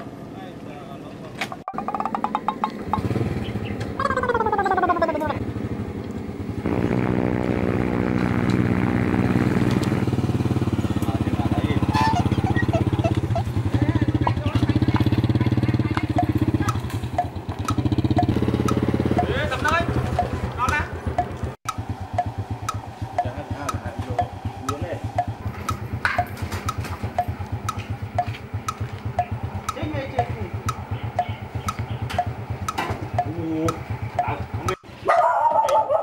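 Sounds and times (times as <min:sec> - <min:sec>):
motorcycle engine putter: 0:01.4 - 0:05.4, 0:10.6 - 0:35.0.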